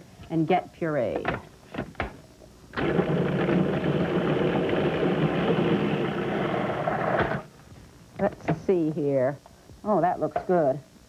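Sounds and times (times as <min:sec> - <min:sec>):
food processor motor running: 0:02.8 - 0:07.5.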